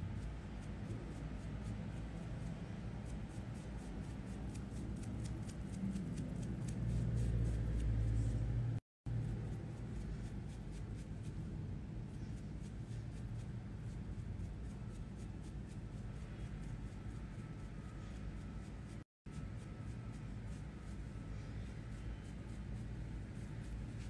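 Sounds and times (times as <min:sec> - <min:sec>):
makeup brushes stroking skin: 0:00.0 - 0:24.0
steady low hum: 0:00.0 - 0:24.0.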